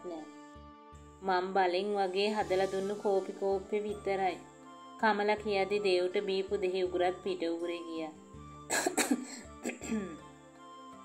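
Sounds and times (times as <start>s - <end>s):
soft background music: 0.0s - 11.0s
person coughing: 8.7s - 10.2s.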